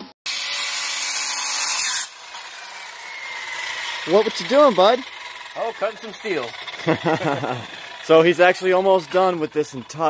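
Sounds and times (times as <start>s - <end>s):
circular saw cutting steel: 0.3s - 10.0s
saw blade whine winding down: 0.3s - 10.0s.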